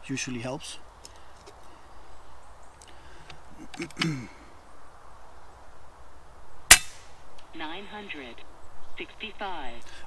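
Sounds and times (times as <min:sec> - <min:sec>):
man murmuring: 0:03.5 - 0:04.5.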